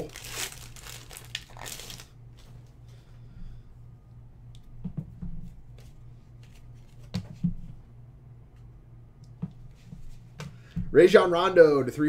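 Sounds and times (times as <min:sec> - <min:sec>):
foil wrapper crinkling: 0:00.0 - 0:02.2.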